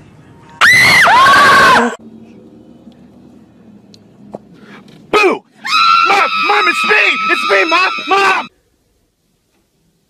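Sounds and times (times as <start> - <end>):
person screaming in fright: 5.6 - 8.5.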